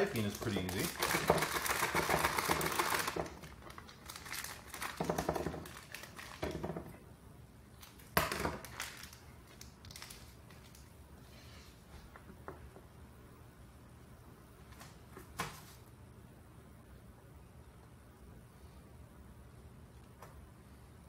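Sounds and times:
plastic bag crinkling: 0.0s - 6.8s, 7.8s - 10.9s.

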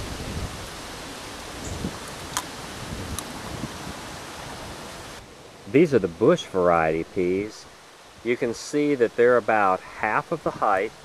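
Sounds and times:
outdoor background hiss: 0.0s - 11.0s
pea pod splitting clicks: 2.3s - 2.5s.

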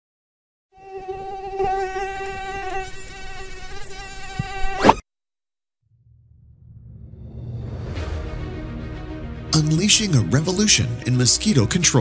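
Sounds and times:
mosquito buzzing: 0.7s - 5.0s.

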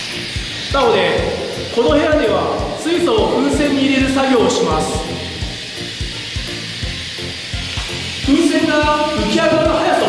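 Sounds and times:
background music with beat: 0.0s - 10.0s
gas hissing into balloon: 0.0s - 10.0s.

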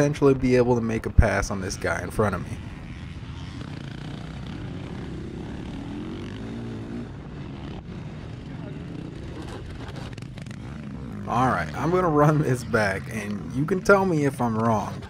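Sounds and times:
motocross bike engine revving: 0.0s - 15.0s.

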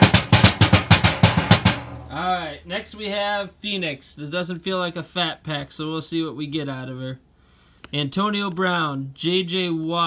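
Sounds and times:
child drumming sharp strikes: 0.0s - 2.2s.

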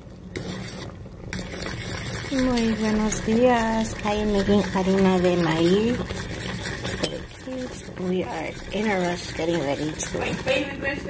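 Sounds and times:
spoon stirring thick porridge: 0.3s - 10.7s
spoon clinking against bowl: 6.9s - 7.4s.

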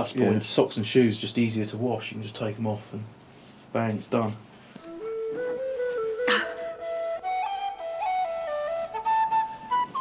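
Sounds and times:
flute-like woodwind melody: 4.8s - 10.0s.

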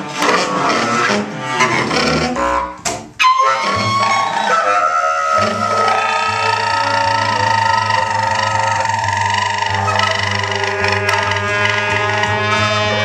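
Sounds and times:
bass clarinet: 0.0s - 13.0s
cello: 0.0s - 13.0s
tenor saxophone: 0.0s - 13.0s
trumpet: 0.0s - 13.0s.

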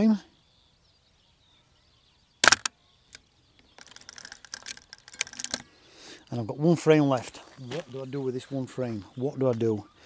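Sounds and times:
camera shutter double click: 2.4s - 2.7s.

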